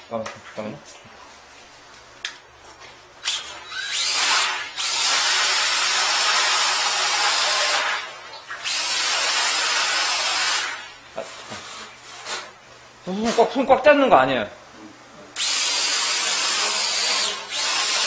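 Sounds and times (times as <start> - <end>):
cordless drill turning drain cable: 3.2 - 7.8, 15.4 - 18.0.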